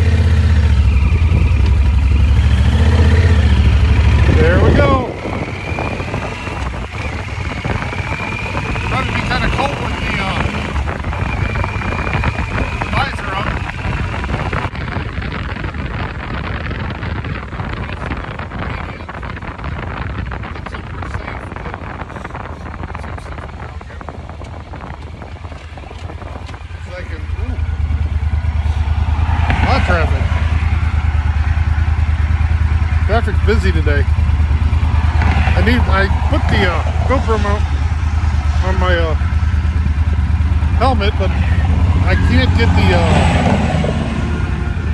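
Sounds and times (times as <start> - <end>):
motorcycle engine running: 0.0 - 44.9
wind noise on microphone: 0.0 - 44.9.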